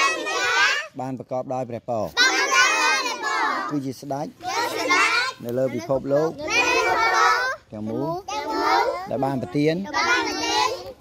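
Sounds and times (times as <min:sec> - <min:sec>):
children talking: 0:00.0 - 0:01.0, 0:02.0 - 0:11.0
voices talking: 0:00.0 - 0:11.0.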